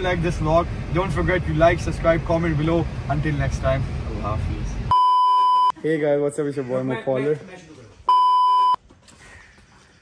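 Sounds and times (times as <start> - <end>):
high electronic beep: 4.9 - 5.7, 8.1 - 8.8.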